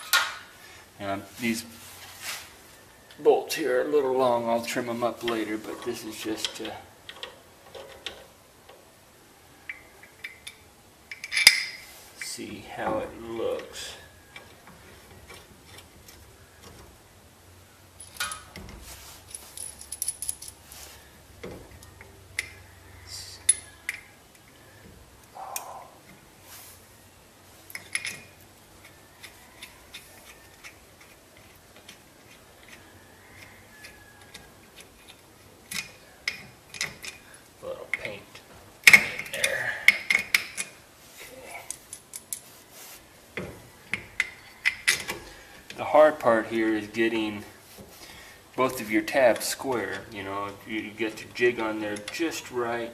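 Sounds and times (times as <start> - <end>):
metallic clinks and taps: 19.3 - 20.6.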